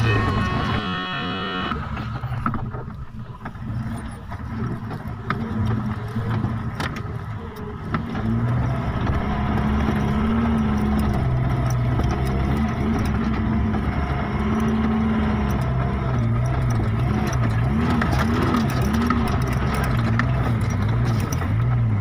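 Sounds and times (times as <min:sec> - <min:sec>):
vehicle engine under load: 0:00.0 - 0:22.0
knocks and rattles: 0:02.0 - 0:22.0.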